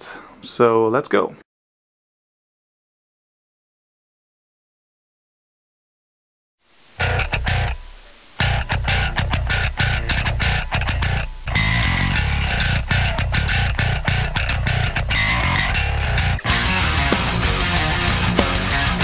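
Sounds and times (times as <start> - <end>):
line hiss: 6.6 - 11.6
electric bass guitar: 7.0 - 19.0
heavy metal music: 7.0 - 19.0.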